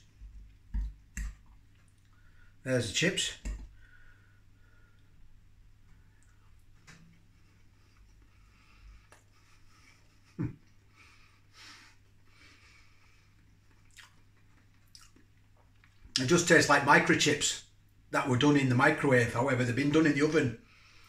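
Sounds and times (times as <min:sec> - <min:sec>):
soft mouth noises: 0:05.8 - 0:11.2, 0:11.9 - 0:16.2
person chewing food: 0:05.9 - 0:11.0, 0:11.9 - 0:16.2.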